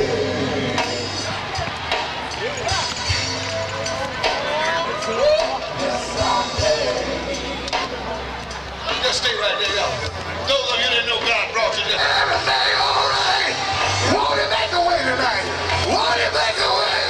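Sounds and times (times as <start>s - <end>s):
bass line: 0.0s - 8.8s, 11.9s - 17.0s
gospel band playing: 0.0s - 17.0s.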